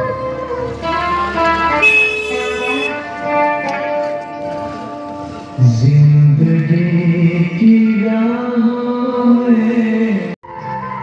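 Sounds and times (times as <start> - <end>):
background music: 0.0 - 11.0
motorcycle horn: 0.9 - 3.6.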